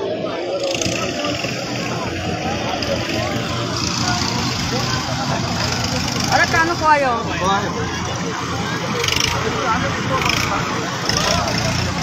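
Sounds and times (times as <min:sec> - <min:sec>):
crowd chatter: 0:00.0 - 0:12.0
diesel engine running: 0:00.1 - 0:12.0.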